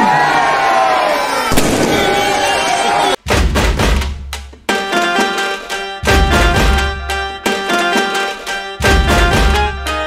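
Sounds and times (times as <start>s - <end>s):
crowd shouting and cheering: 0.0s - 3.2s
loud firecracker bang: 1.5s - 2.5s.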